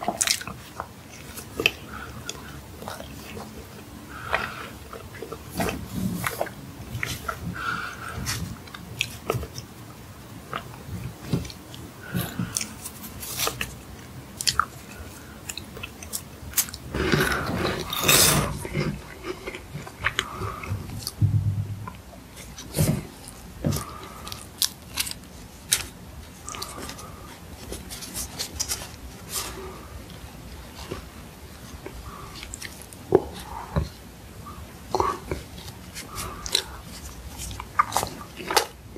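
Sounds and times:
wet chewing: 0.0s - 21.2s, 21.8s - 34.0s, 34.9s - 38.9s
crisp crunching of cookie: 22.4s - 33.5s.

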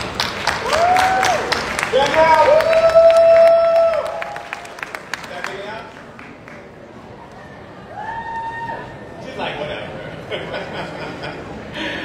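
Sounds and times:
audience applause: 0.0s - 7.0s.

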